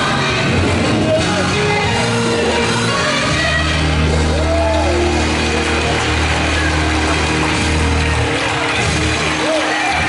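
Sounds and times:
church band playing gospel music: 0.0s - 10.0s
long held bass notes: 2.0s - 9.2s.

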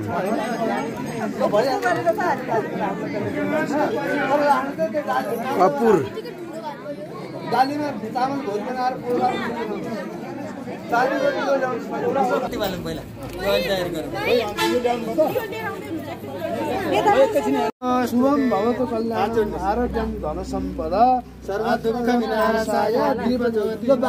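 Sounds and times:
people talking: 0.0s - 24.0s.

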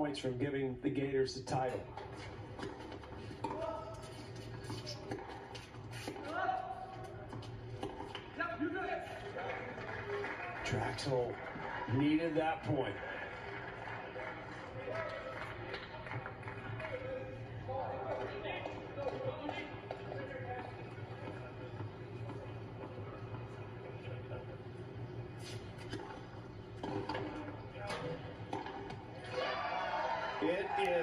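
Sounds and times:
crowd murmur: 13.0s - 25.5s
steady low hum: 15.5s - 29.3s.

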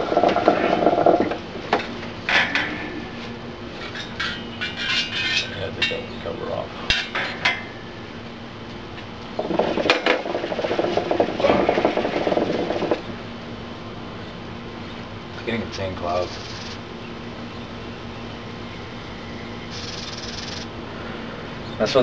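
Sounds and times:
water bubbling in hookah: 0.0s - 1.7s, 9.2s - 13.3s.

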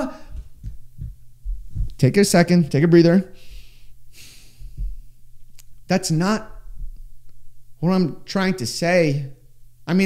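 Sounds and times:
microphone handling bumps: 0.0s - 2.4s, 4.6s - 5.1s.

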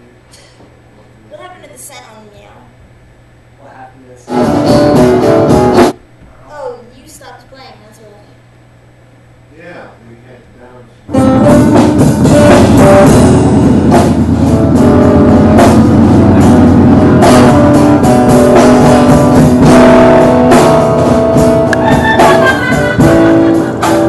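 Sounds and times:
live band with guitar and drums: 4.3s - 6.0s, 11.1s - 24.0s.

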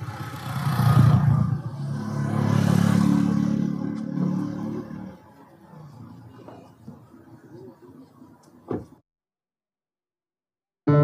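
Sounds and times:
vehicle engine passing by: 0.0s - 6.8s.

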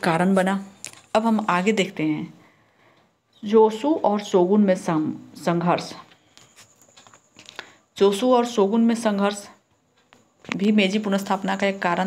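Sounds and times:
woman speaking: 0.0s - 2.4s, 3.4s - 6.1s, 8.0s - 9.6s, 10.5s - 12.0s
faint clicks and scratches: 5.9s - 7.8s.

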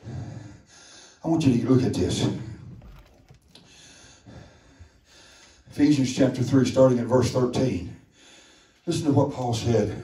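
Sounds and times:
faint breathing: 0.0s - 1.3s, 2.4s - 5.8s, 8.0s - 8.9s.

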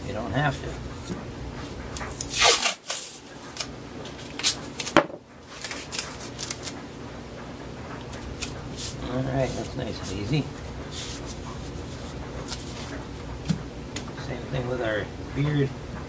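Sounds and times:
light rustling of tape: 0.5s - 6.8s, 8.0s - 13.0s
tape crackling and snapping: 2.0s - 6.8s, 8.0s - 8.7s
tape ripped off roll: 2.2s - 3.2s.

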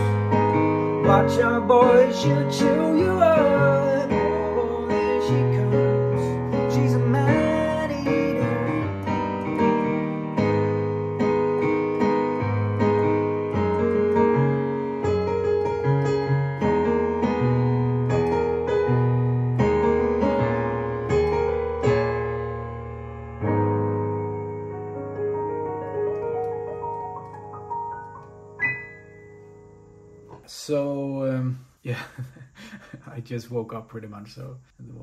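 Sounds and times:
digital piano playing pop chords: 0.0s - 31.4s.

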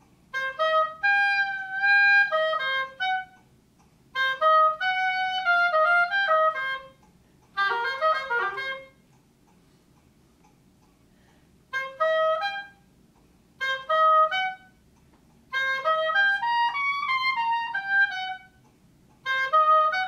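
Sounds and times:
oboe playing quick notes: 0.3s - 3.4s, 4.2s - 7.0s, 7.6s - 9.0s, 11.7s - 12.8s, 13.6s - 14.8s, 15.5s - 18.6s, 19.2s - 20.0s.

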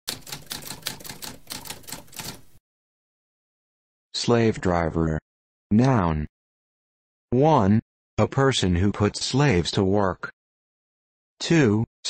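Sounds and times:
typewriter keys typing: 0.1s - 2.6s.

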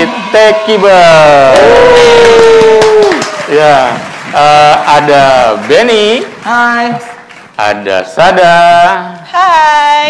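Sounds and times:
voices cheering call: 0.0s - 4.6s.

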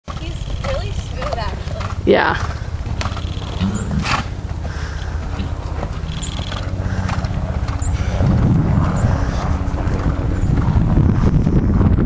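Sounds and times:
horse hoofbeats on sand: 0.0s - 12.0s
low rumble: 0.1s - 12.0s.

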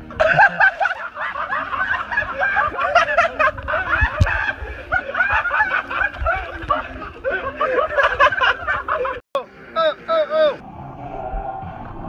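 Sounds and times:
people laughing: 0.0s - 10.6s.

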